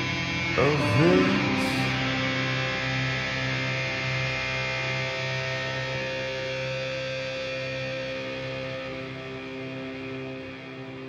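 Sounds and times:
held electric guitar chord ringing: 0.0 - 10.8.

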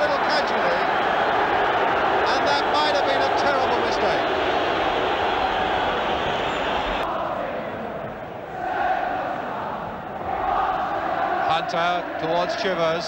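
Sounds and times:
stadium crowd shouting and chanting: 0.0 - 13.0.

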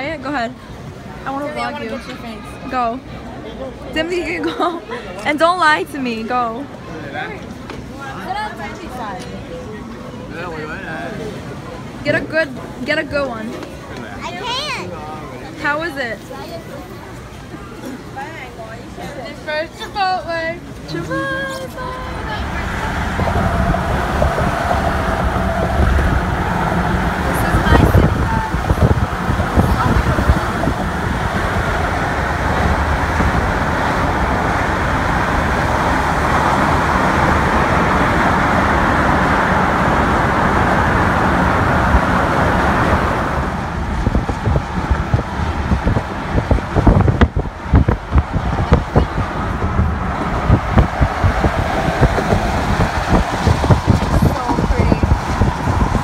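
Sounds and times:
car road and wind noise: 5.3 - 56.0.

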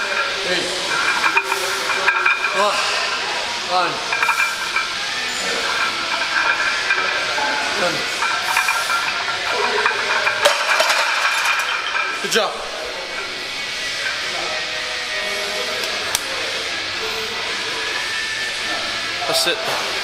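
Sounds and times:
faint background music: 0.0 - 20.0.

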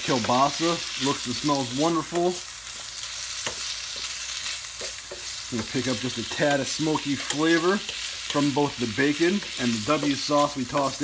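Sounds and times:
sausage and onions sizzling: 0.0 - 11.0.

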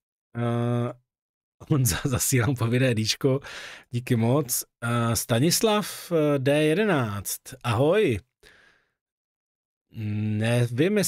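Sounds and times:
man speaking: 0.4 - 1.0, 1.6 - 8.2, 10.0 - 11.0.

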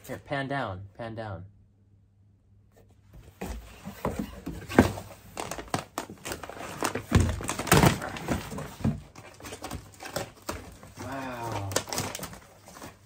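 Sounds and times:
cardboard rustling: 3.1 - 13.0
plastic crinkling: 5.3 - 13.0.

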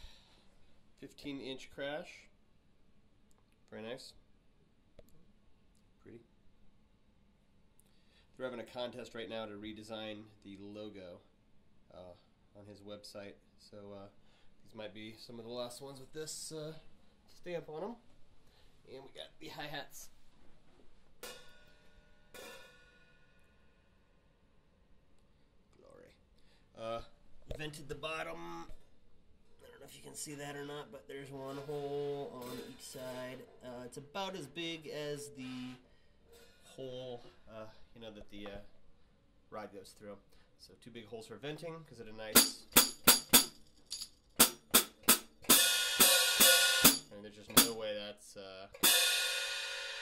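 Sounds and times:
hi-hat cymbal ringing: 42.4 - 47.9, 48.8 - 50.0.

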